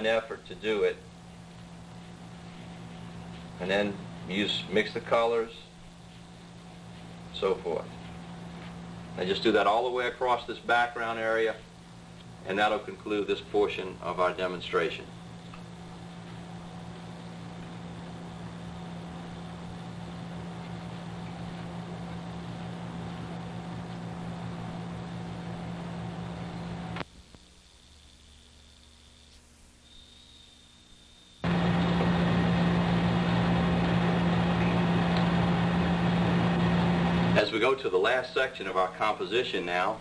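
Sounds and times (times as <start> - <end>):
electrical hum with hiss: 0.0 - 40.0.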